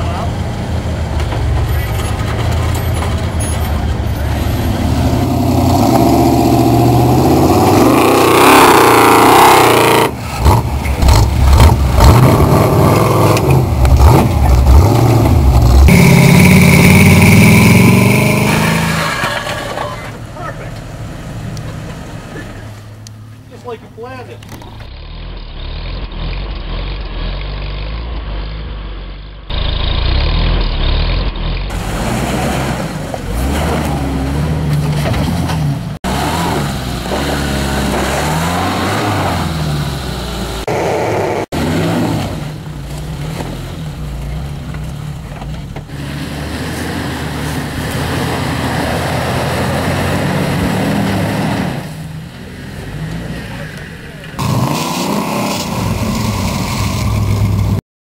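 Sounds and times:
off-road engines revving: 0.0s - 57.8s.

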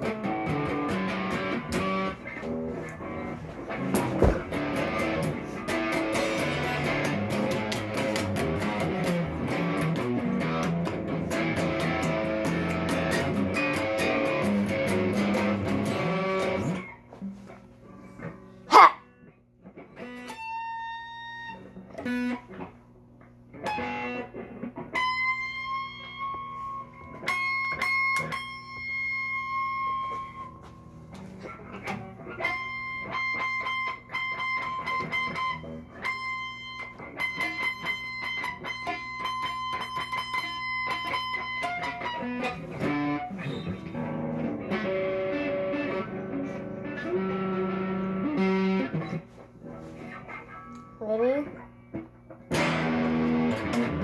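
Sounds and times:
electric guitar single notes: 0.0s - 17.1s, 23.3s - 54.0s
low amplifier hum: 0.0s - 54.0s.

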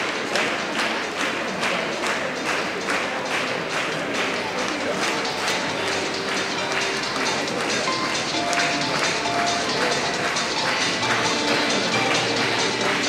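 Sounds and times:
audience clapping in time: 0.0s - 13.0s
crowd murmur: 0.0s - 13.0s.

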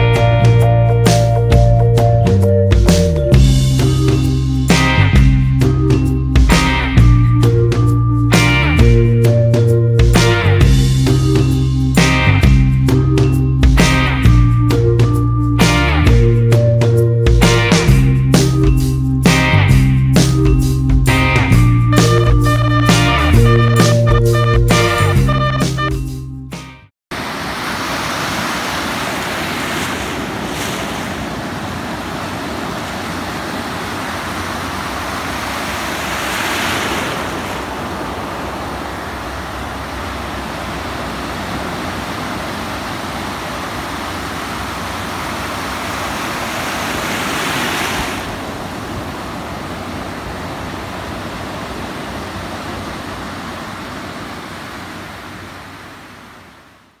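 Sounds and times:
ocean surf washing over beach: 27.1s - 57.0s
waves breaking: 27.1s - 57.0s.

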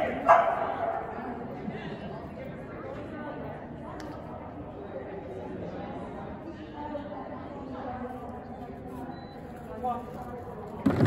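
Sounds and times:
dog barking in a hall: 0.0s - 1.4s.

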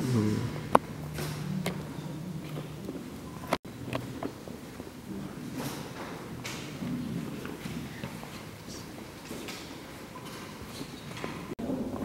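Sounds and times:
knocks and shuffling: 0.0s - 12.0s
low murmur of people: 0.0s - 12.0s.

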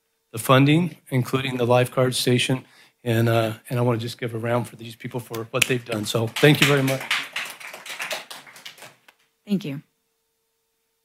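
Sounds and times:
audience applauding: 5.6s - 9.1s.

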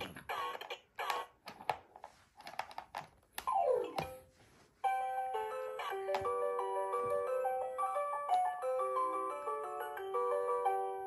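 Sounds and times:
toy chiming tune: 4.8s - 11.0s.

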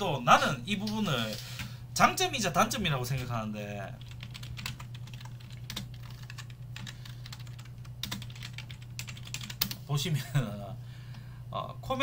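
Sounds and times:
steady low hum: 0.0s - 12.0s
typing on computer keyboard: 4.0s - 9.8s.

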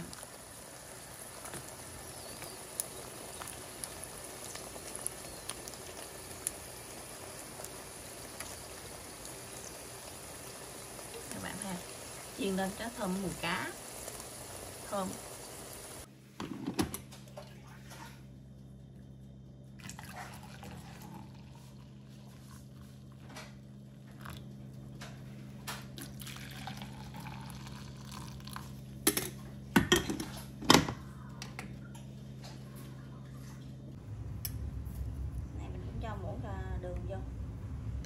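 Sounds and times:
pan frying sizzle: 0.0s - 16.7s
steady low hum: 0.0s - 38.0s
coffee pouring into cup: 19.7s - 25.0s, 25.6s - 29.4s.

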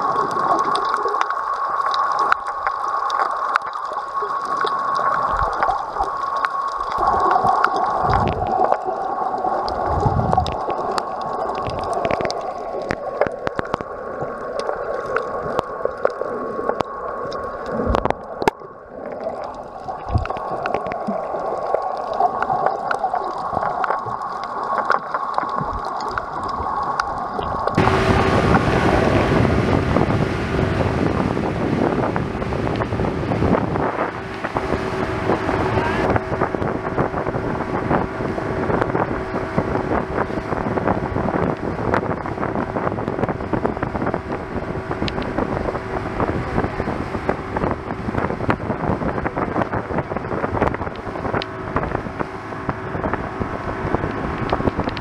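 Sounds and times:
motorboat engine hum: 0.0s - 55.0s
muffled underwater sound: 0.0s - 55.0s
rushing water: 0.0s - 55.0s
wind buffeting microphone: 9.8s - 10.6s, 27.4s - 55.0s.

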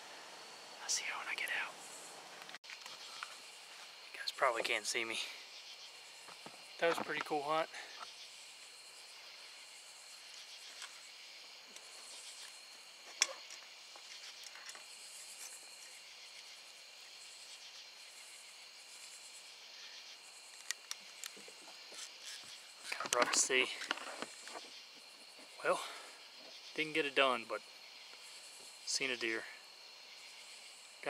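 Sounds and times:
crickets and insects chirping: 0.0s - 31.0s.

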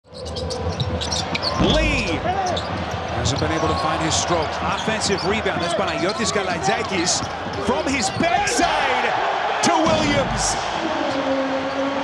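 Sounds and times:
sneakers squeaking: 0.1s - 8.4s.

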